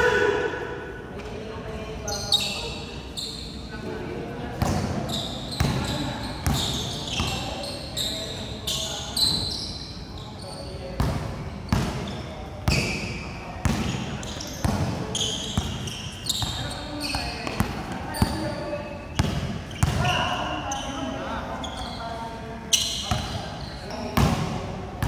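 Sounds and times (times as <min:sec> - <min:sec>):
sneakers squeaking on court: 0:02.1 - 0:03.7, 0:04.6 - 0:24.6
basketball bouncing on hard court: 0:13.6 - 0:18.5, 0:19.1 - 0:20.1.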